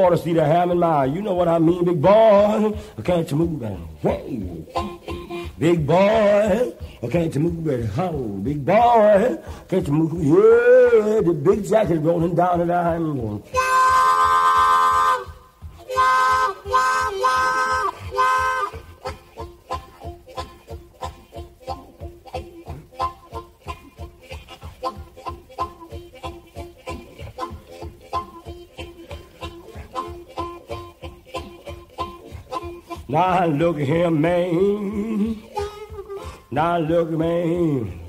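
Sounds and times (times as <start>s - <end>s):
harmonica imitating a train: 0.0s - 38.0s.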